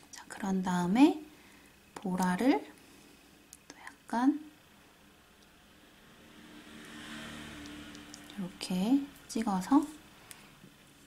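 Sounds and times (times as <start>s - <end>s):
faint low mechanical hum: 0.0s - 11.0s.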